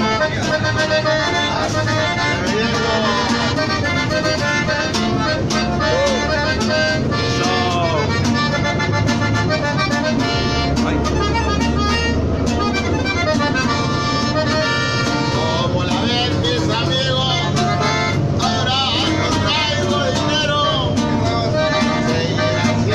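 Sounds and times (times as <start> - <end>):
button accordion melody: 0.0 - 22.9
rhythmic accompaniment: 0.0 - 22.9.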